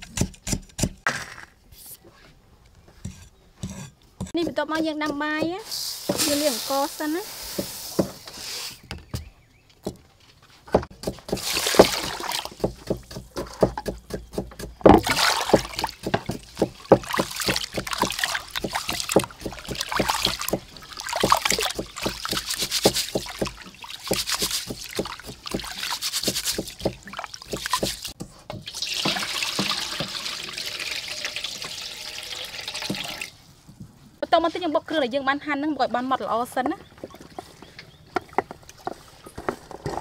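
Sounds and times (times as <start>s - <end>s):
hands swishing rice in water: 11.4s - 12.6s, 15.0s - 28.2s
steady run of water: 15.0s - 33.4s
water poured into a pot: 28.7s - 33.4s.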